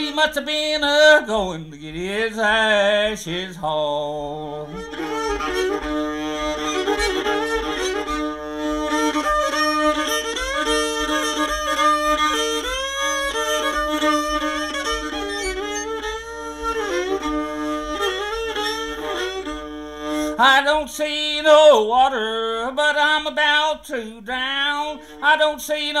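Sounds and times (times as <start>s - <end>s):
fiddle playing a tune: 1.9s - 26.0s
banjo picking: 4.0s - 22.6s.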